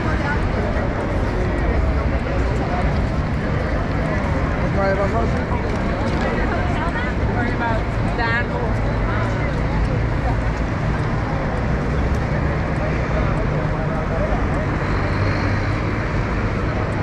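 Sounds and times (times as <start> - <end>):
cars and buses passing: 0.0 - 17.0
passersby talking: 0.0 - 17.0
road traffic rumble: 0.0 - 17.0.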